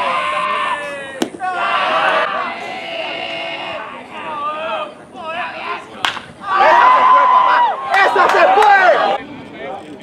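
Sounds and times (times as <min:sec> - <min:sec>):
people shouting and yelling: 0:00.0 - 0:09.2
sharp crack: 0:06.0 - 0:06.3.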